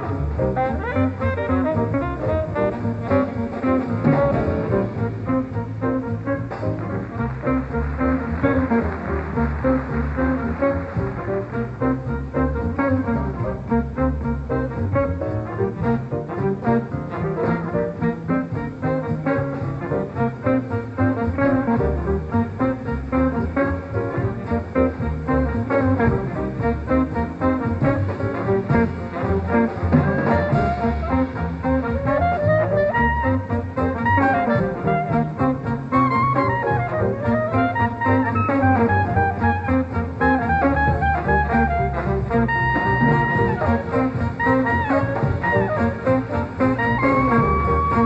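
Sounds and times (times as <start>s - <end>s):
swing jazz band playing: 0.0s - 48.0s.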